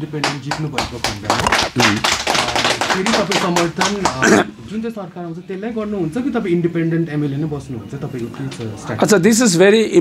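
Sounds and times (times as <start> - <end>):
man speaking close to microphone: 0.0 - 7.6.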